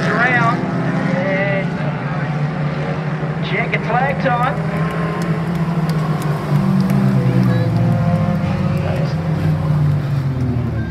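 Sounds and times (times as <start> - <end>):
race car engines passing: 0.0 - 10.9.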